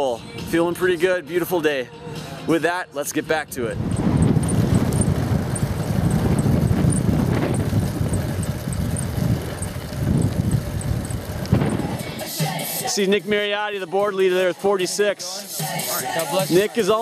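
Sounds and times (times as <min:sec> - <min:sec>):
road noise: 0:02.0 - 0:13.4
wind buffeting microphone: 0:03.4 - 0:12.2
faint high ticking: 0:03.8 - 0:12.8.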